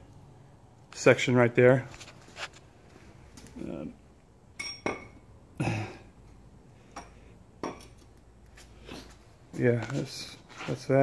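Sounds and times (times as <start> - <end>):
metal tubing knocking and clinking: 4.6 - 5.2.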